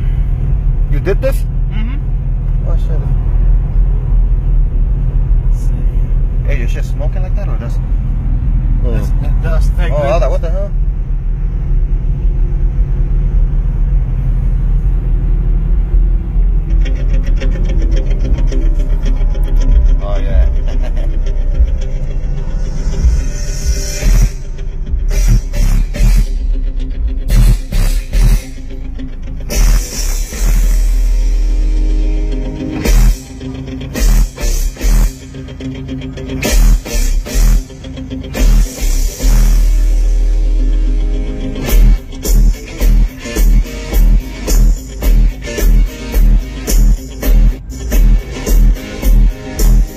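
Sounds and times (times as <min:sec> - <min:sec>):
bass-heavy music in a car: 0:00.0 - 0:49.9
fast ticking beat: 0:16.6 - 0:40.8, 0:41.5 - 0:49.9.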